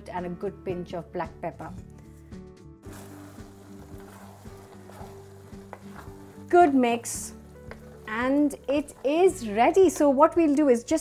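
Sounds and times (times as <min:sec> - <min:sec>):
background music: 0:00.0 - 0:11.0
food sizzling in a pan: 0:02.8 - 0:10.9.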